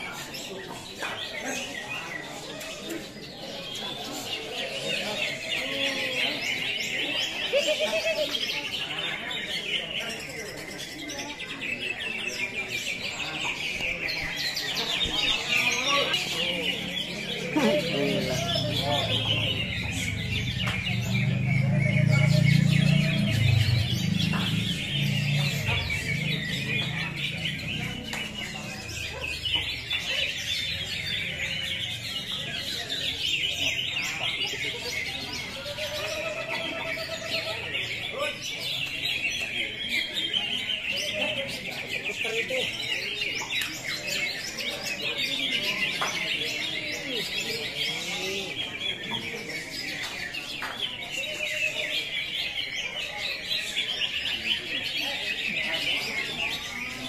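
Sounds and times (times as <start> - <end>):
many birds singing: 0.0 - 57.0.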